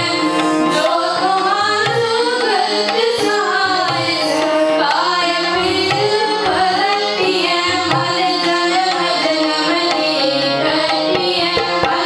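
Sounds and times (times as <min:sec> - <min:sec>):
girls singing devotional melody: 0:00.0 - 0:12.0
harmoniums: 0:00.0 - 0:12.0
tabla drumming: 0:00.0 - 0:12.0.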